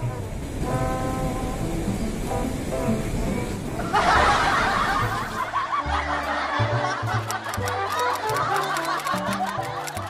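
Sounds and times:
laughter: 3.8 - 10.0.

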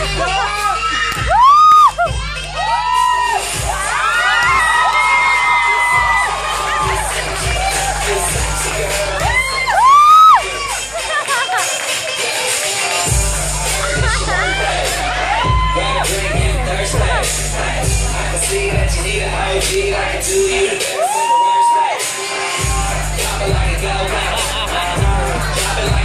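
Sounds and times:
audience screaming and cheering: 0.0 - 26.0
dance-pop music: 0.0 - 26.0.

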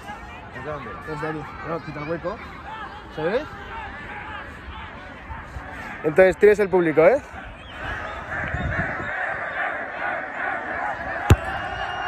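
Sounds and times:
crowd chattering and calling out: 0.0 - 12.0
football kicked thump: 11.2 - 11.7.

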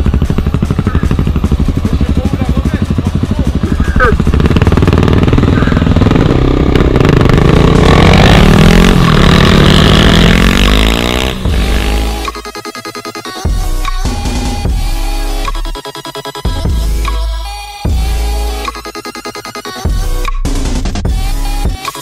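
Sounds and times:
motorcycle engine revving: 0.0 - 12.5.

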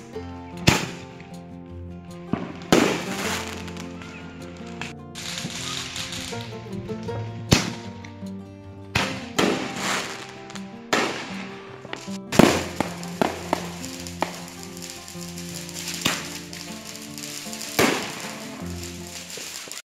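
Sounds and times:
music with held notes: 0.0 - 19.8
fireworks bangs: 2.3 - 3.9, 5.2 - 6.5, 9.0 - 19.8.

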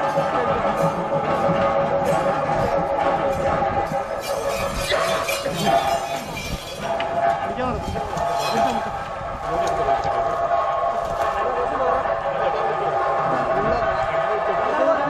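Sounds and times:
crowd talking: 0.0 - 15.0
reed instrument holding tones: 0.0 - 15.0.

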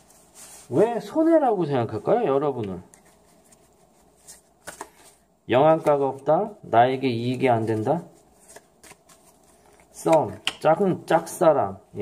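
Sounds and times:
cards being shuffled: 2.6 - 6.3, 7.2 - 10.7.

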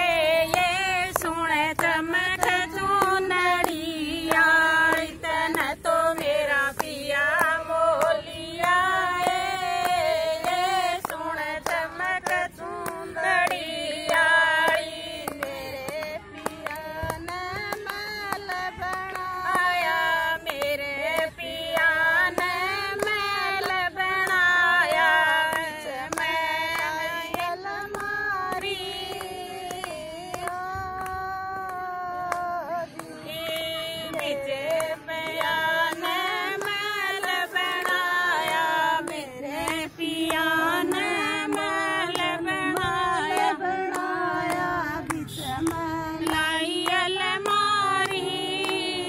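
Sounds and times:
hand claps: 0.0 - 49.0
woman singing unaccompanied: 0.0 - 49.0.

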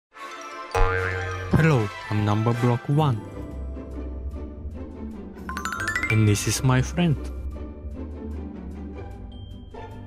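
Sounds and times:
cartoon background music: 0.2 - 8.9.

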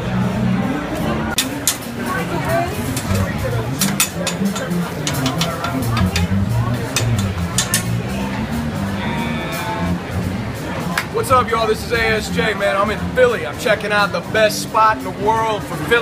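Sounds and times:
crowd chatter: 0.0 - 16.0
kitchen clatter clinks: 2.9 - 6.3, 6.9 - 8.0.

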